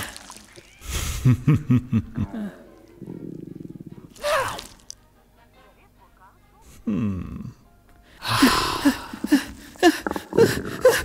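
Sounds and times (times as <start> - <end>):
low pulsing purr-like rumble: 3.0 - 4.2.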